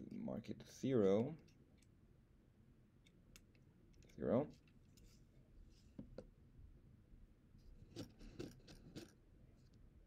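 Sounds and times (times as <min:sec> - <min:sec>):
faint clicks and scrapes: 0:03.0 - 0:06.3, 0:07.6 - 0:09.8.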